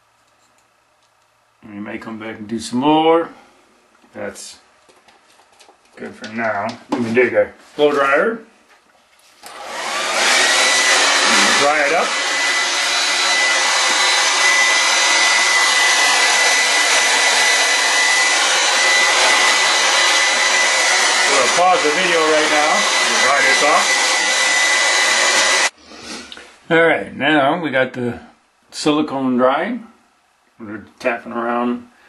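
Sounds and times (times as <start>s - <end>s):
hair dryer blowing: 9.4s - 25.8s.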